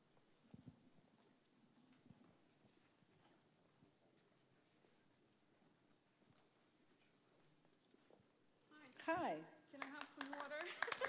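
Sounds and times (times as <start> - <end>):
faint footsteps on floor: 0.1 - 9.1.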